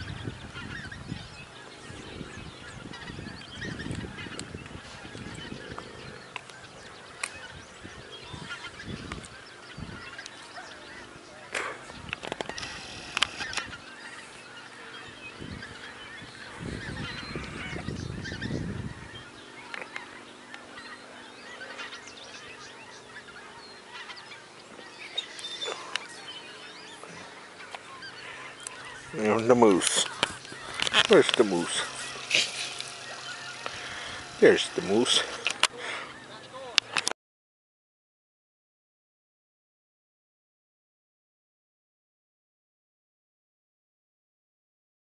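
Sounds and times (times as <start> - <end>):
geese honking: 1.7 - 11.7, 12.3 - 36.7
sharp clicks: 12.1 - 13.7
short calls: 25.2 - 37.0.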